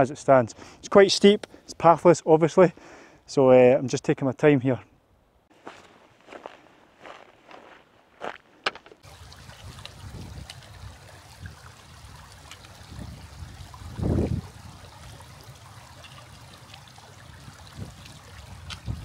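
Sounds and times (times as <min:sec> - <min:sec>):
river running over stones: 0:09.0 - 0:19.0.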